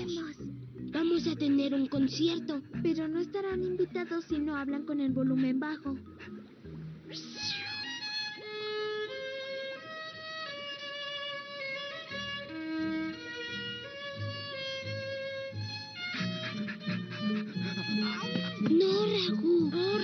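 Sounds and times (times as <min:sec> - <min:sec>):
low accompaniment: 0:00.0 - 0:20.0
violin melody: 0:07.3 - 0:20.0.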